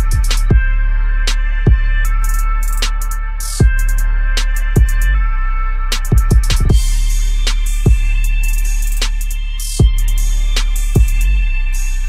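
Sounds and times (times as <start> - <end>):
deep kick drum dropping in pitch: 0.0 - 0.8, 1.7 - 2.0, 6.1 - 7.0, 7.9 - 8.2
deep bass: 0.0 - 12.0
high synth notes: 0.0 - 12.0.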